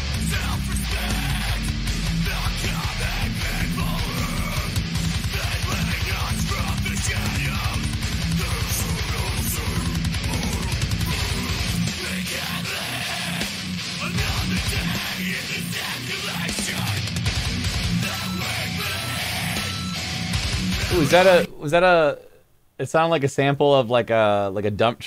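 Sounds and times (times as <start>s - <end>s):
heavy metal guitar and drums: 0.0s - 22.4s.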